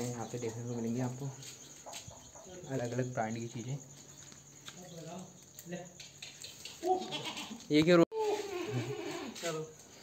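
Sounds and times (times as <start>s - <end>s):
goat bleating: 6.8s - 9.4s.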